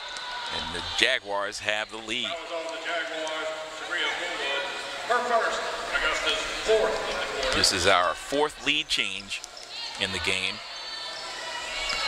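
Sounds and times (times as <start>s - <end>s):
indistinct talking voices: 0.4s - 12.0s.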